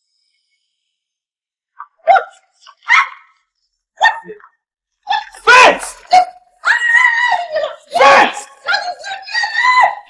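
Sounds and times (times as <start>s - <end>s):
dog-like barks: 1.8s - 3.4s.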